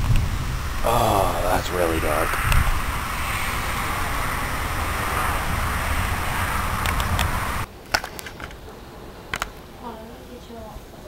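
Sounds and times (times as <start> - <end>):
wind buffeting microphone: 0.0 - 8.6
storm wind gusting through trees: 0.0 - 11.0.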